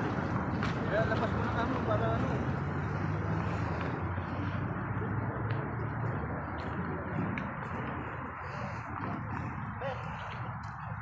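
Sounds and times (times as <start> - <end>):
road traffic noise: 0.0 - 11.0
voices: 0.6 - 2.7, 8.4 - 11.0.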